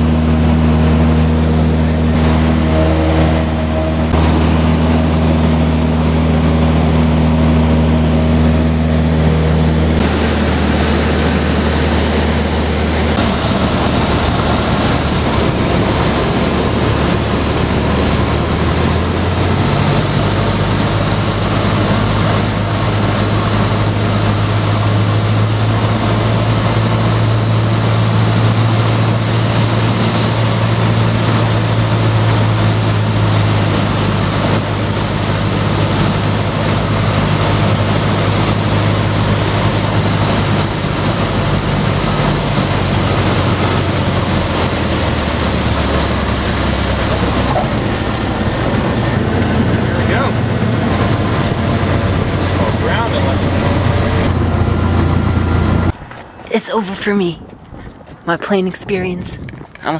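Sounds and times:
wind rushing: 0.0s - 24.1s
propeller plane engine droning: 0.0s - 59.9s.

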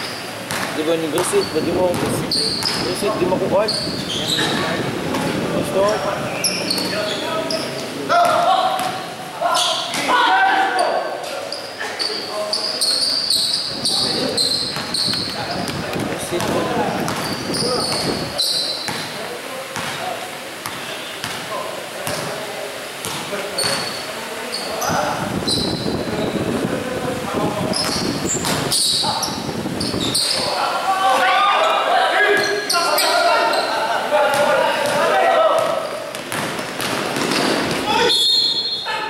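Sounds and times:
sneaker squeaks: 0.0s - 19.2s, 20.6s - 21.4s, 23.0s - 26.4s, 27.6s - 30.6s, 31.6s - 39.0s
voices echoing in hall: 0.0s - 39.0s
basketball bouncing on court: 0.5s - 3.9s, 8.2s - 9.0s, 13.9s - 18.2s, 18.8s - 19.2s, 19.8s - 20.0s, 20.6s - 21.4s, 27.7s - 28.8s, 34.3s - 37.9s.

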